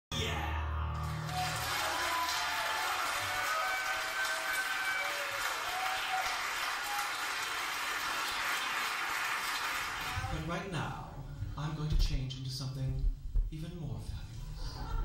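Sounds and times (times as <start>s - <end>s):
short cheers: 0.1s - 7.7s
audience applauding: 1.0s - 10.4s.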